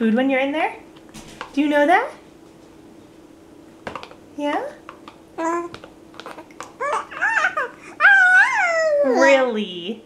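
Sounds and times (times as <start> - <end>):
baby cooing and babbling: 5.4 - 9.5.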